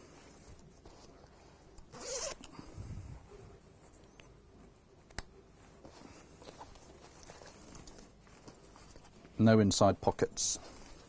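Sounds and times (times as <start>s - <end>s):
fabric rustling: 0.0s - 11.0s
zipper being pulled: 1.9s - 2.5s.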